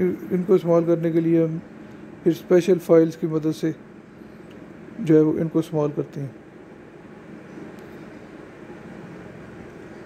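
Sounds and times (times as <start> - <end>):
low background hum and hiss: 0.0 - 10.0.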